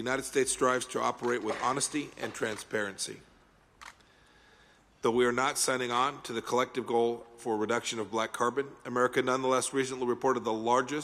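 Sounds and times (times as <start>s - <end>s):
camera shutter click: 3.8s - 4.0s.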